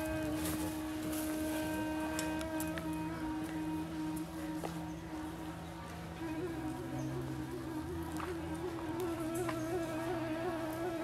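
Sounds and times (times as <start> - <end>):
higher wavering tone: 0.0 - 5.2
droning wavering tone: 0.0 - 11.0.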